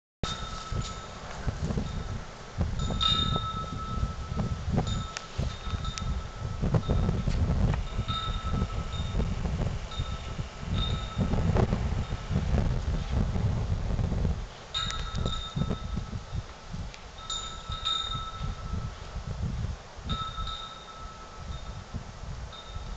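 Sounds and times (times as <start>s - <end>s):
wind rumbling on microphone: 0.2s - 22.9s
chime ringing: 2.8s - 9.2s, 17.2s - 18.9s, 20.1s - 21.8s.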